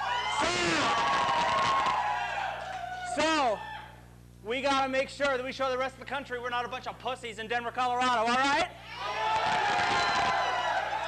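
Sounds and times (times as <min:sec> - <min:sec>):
audience cheering and whooping: 0:00.0 - 0:04.0, 0:08.8 - 0:11.0
long falling whoop: 0:08.9 - 0:11.0.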